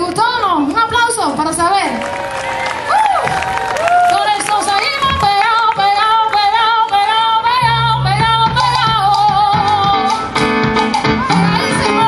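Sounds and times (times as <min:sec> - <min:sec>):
woman singing: 0:04.0 - 0:12.0
live band music: 0:05.2 - 0:12.0
bass line: 0:07.3 - 0:12.0
plucked strings: 0:07.6 - 0:12.0.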